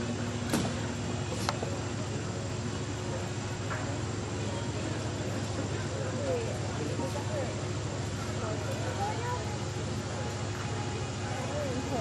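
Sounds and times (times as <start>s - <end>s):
distant voices: 0.0s - 12.0s
outdoor background rumble: 0.0s - 12.0s.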